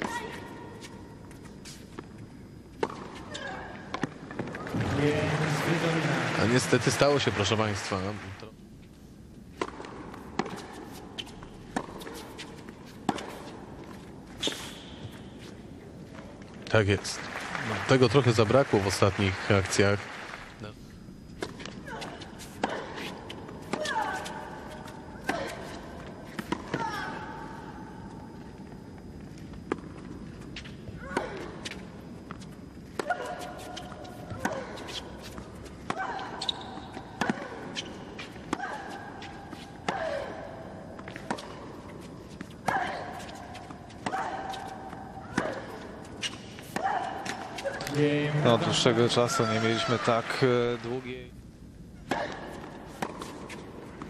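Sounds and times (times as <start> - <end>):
tennis ball hit by racquets: 11.7 - 13.5, 31.1 - 48.0, 52.0 - 54.0.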